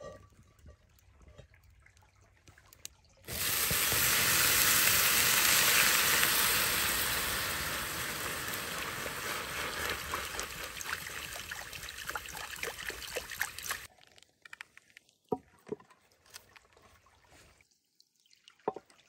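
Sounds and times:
water sizzling in hot pan: 0:03.3 - 0:13.9.

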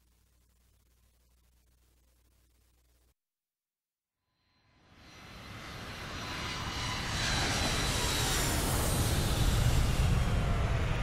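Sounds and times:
jet airliner flying overhead: 0:04.5 - 0:11.0.

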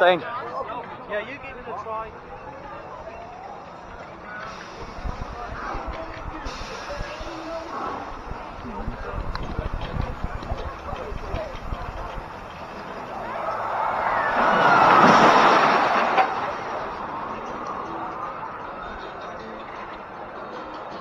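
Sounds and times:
roller coaster rushing past: 0:04.3 - 0:18.8.

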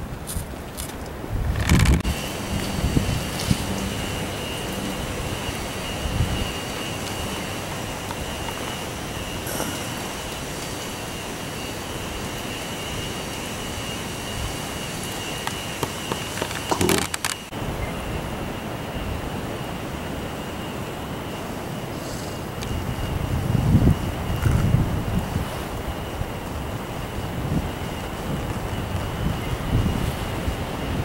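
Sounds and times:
wind on microphone: 0:00.0 - 0:11.0, 0:22.6 - 0:31.0
thin steady high tone: 0:02.0 - 0:31.0.

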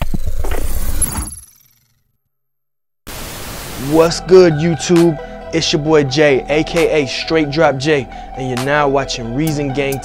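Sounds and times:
tv static hiss: 0:03.1 - 0:04.0.

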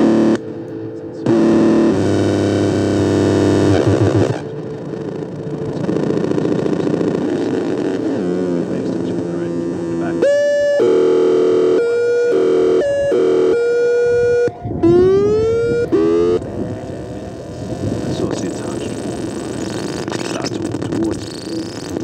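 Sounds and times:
synthesizer notes: 0:00.0 - 0:22.0.

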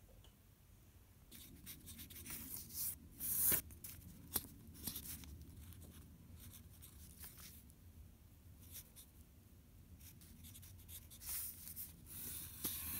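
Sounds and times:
low steady hum: 0:00.0 - 0:12.9.

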